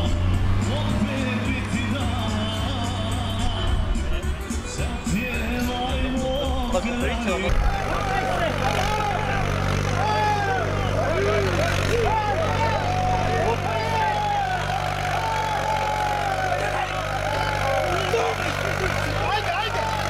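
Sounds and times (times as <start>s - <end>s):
music: 0.0s - 20.0s
tractor engine running: 0.0s - 20.0s
men shouting together: 7.5s - 20.0s.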